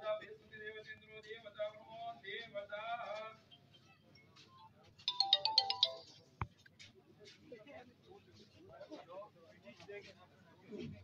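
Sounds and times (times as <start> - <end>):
mobile phone ringtone: 5.1 - 6.2.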